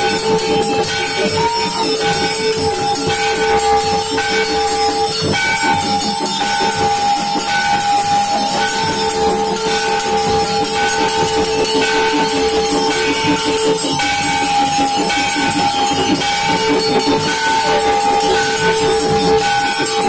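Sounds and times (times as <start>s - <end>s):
jangle of small metallic strikes: 0.0s - 20.0s
temple bells ringing: 0.0s - 20.0s.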